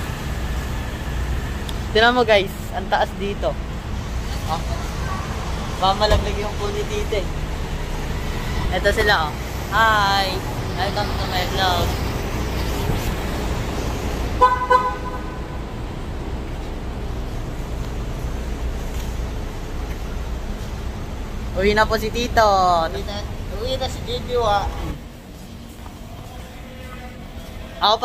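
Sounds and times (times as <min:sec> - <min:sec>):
traffic rumble: 0:00.0 - 0:28.0.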